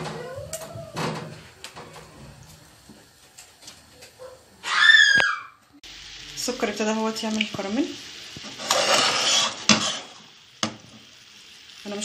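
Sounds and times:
sugar bubbling: 0:05.8 - 0:12.0
pan scraping on stove grate: 0:08.4 - 0:10.3.

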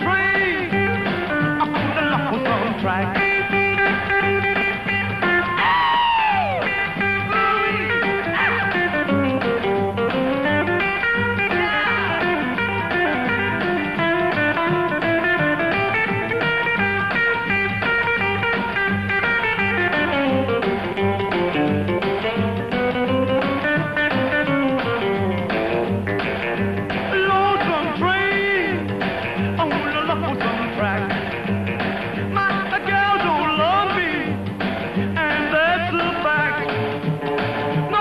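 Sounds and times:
electric guitar lead: 0:00.0 - 0:38.0
strummed acoustic guitar: 0:00.0 - 0:38.0
upright bass: 0:00.0 - 0:38.0.

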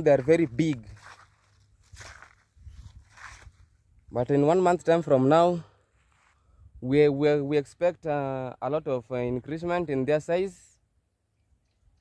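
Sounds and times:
footsteps scuffing on dry soil: 0:00.0 - 0:04.0, 0:05.8 - 0:06.5.

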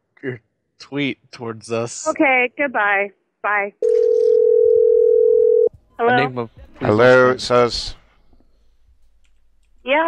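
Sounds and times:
telephone ringback tone: 0:03.8 - 0:05.7.

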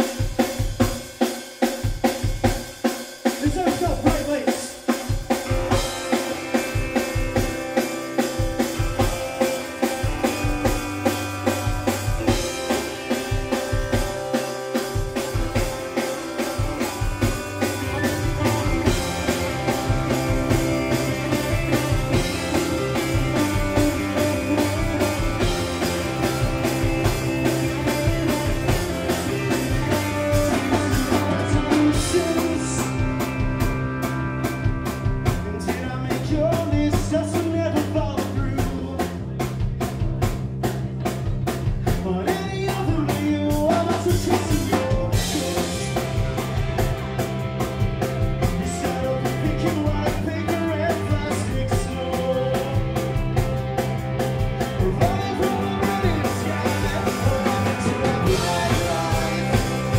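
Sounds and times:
bass guitar: 0:00.0 - 0:59.9
drum kit beat: 0:00.0 - 0:59.9
electric guitars: 0:01.9 - 0:59.9.

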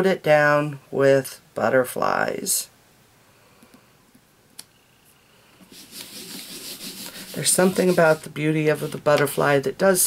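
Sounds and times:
hand rubbing on cardstock: 0:05.6 - 0:09.4.

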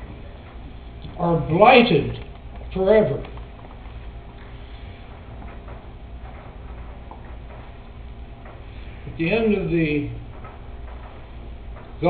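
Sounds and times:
low steady hum: 0:00.0 - 0:12.0
small clicks and taps: 0:02.2 - 0:08.7.

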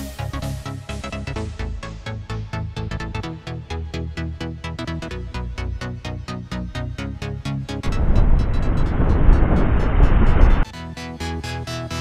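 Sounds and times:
strong wind buffeting microphone: 0:07.8 - 0:10.6.

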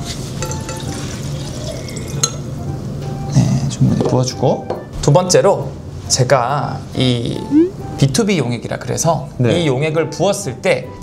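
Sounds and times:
water pouring into a glass: 0:00.5 - 0:02.4.

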